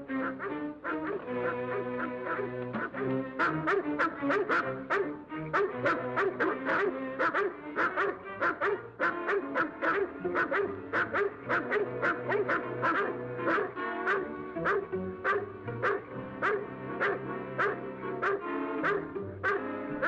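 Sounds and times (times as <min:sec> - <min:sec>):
background music: 0:00.0 - 0:20.0
large dogs barking: 0:00.1 - 0:20.0.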